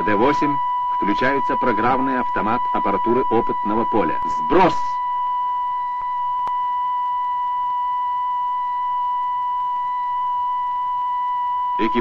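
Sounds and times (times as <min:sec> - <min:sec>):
high electronic signal tone: 0:00.0 - 0:12.0.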